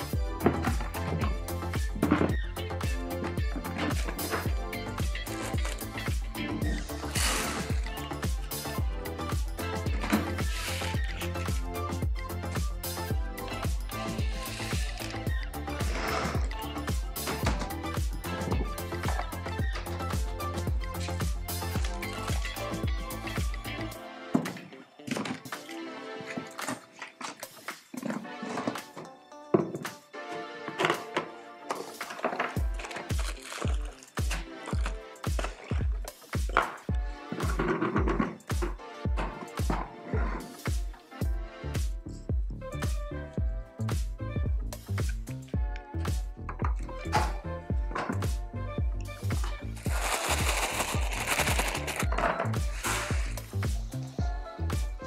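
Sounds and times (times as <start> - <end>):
dance music: 0.0 - 55.0
kick drum: 0.2 - 5.2, 6.1 - 10.2, 11.5 - 23.6, 32.6 - 55.0
plastic bag rustling: 32.6 - 34.9, 49.8 - 52.1.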